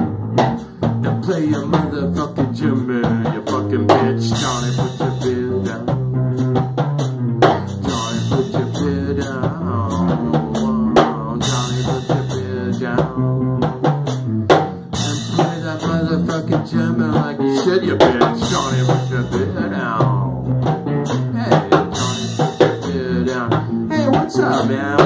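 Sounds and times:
bass and guitar: 0.0 - 25.0
drum kit beat: 0.0 - 25.0.

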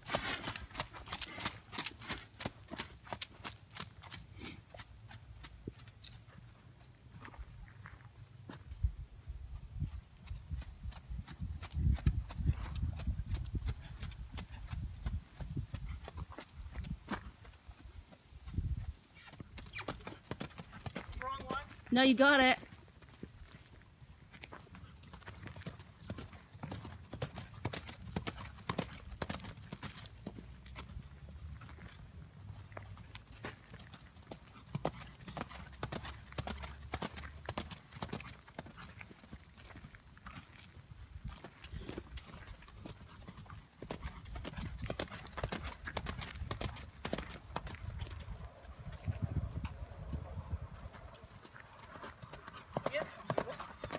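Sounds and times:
horse hoofbeats on gravel: 0.0 - 8.7, 9.6 - 53.9.

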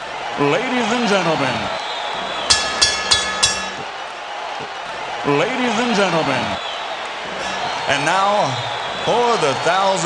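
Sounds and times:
boxing ring bell ringing: 2.5 - 3.9.

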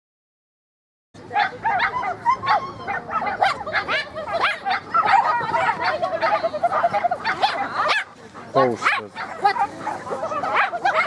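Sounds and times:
small dog barking in high yips: 1.3 - 8.2, 8.8 - 11.0.

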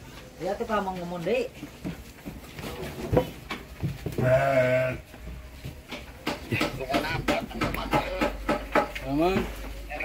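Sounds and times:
sheep bleating: 4.2 - 5.1.

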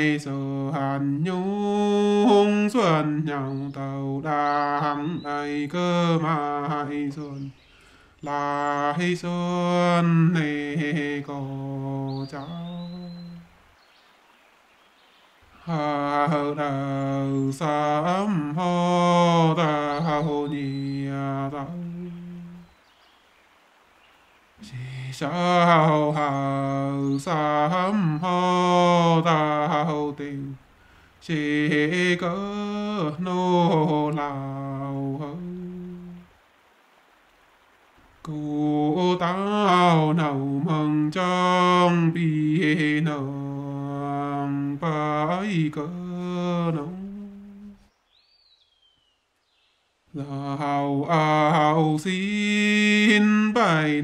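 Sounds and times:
man singing chant-like: 0.0 - 13.5, 15.6 - 22.7, 24.6 - 30.6, 31.2 - 36.3, 38.2 - 47.8, 50.1 - 54.0.

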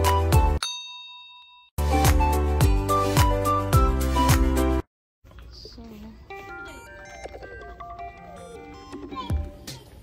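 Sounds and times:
upbeat music with steady beat: 0.0 - 0.6, 1.8 - 4.8
bright ding: 0.6 - 1.7.

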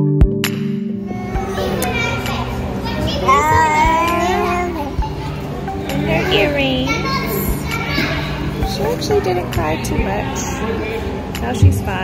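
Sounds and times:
background music: 0.0 - 12.0
hubbub of children's voices: 1.0 - 12.0
high child's call: 1.1 - 5.5.

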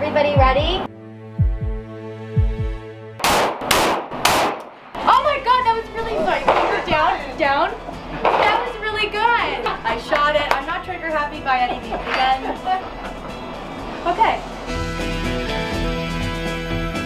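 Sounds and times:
people talking: 0.0 - 0.9, 5.0 - 12.9, 14.0 - 14.4
music with low drum beat: 0.4 - 4.4
pistol shots: 3.2 - 4.9.

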